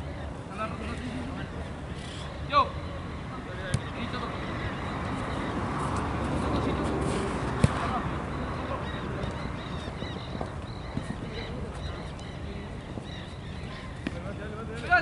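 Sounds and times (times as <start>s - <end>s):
football being kicked: 3.7s - 3.9s, 7.6s - 8.0s.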